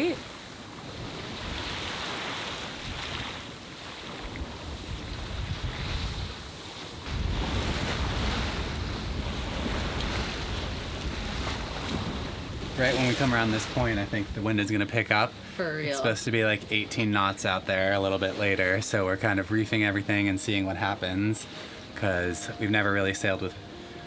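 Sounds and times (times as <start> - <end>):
wind buffeting microphone: 0.0 - 14.7
water rushing past hull: 0.0 - 24.0.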